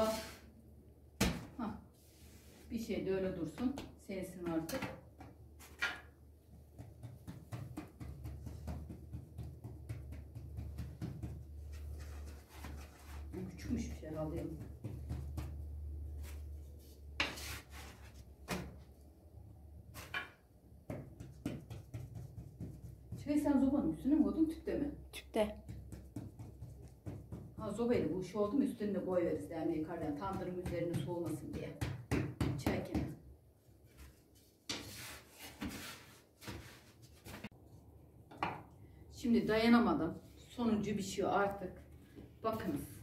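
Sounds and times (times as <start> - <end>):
dough patted by hand: 3.5 - 11.9, 12.6 - 16.4, 20.7 - 23.9, 25.6 - 28.7, 29.8 - 33.3
wooden paddle knocking on board: 6.7 - 11.6, 14.4 - 15.7.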